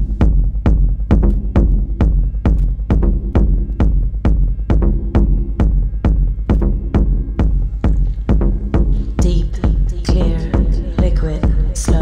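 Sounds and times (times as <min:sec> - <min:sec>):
deep bass: 0:00.0 - 0:12.0
techno kick drum: 0:00.0 - 0:12.0.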